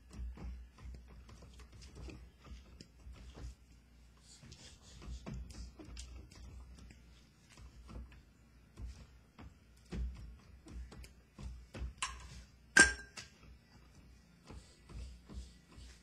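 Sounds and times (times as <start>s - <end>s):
ringing metallic clang: 12.8s - 13.2s.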